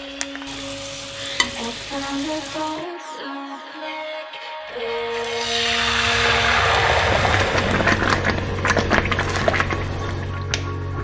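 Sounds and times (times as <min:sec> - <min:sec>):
background music: 0:00.0 - 0:11.0
sauce sizzling in a hot pan: 0:00.5 - 0:02.8.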